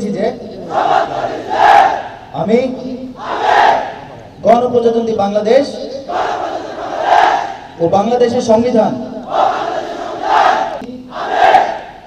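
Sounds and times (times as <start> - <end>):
crowd shouting in unison: 0.6 - 2.3, 3.2 - 4.2, 6.0 - 7.8, 9.2 - 12.0.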